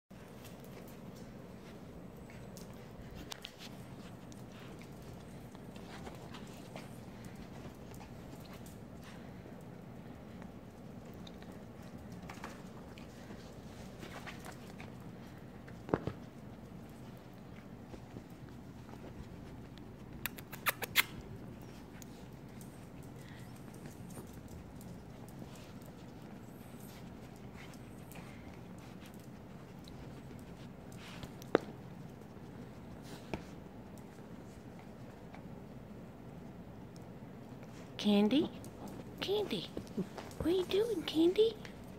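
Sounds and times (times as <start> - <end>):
dog claws clicking on tile: 2.1 - 34.4.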